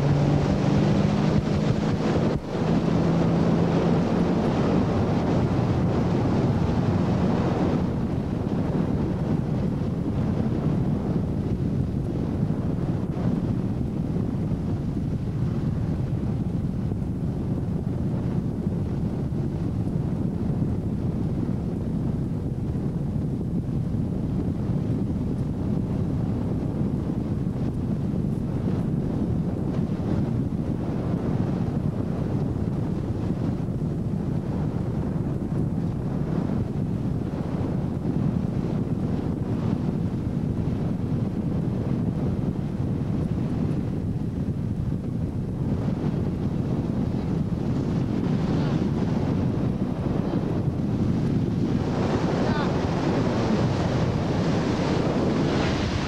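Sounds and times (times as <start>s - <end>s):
boat engine running: 0.0s - 23.2s
wind buffeting microphone: 0.0s - 56.0s.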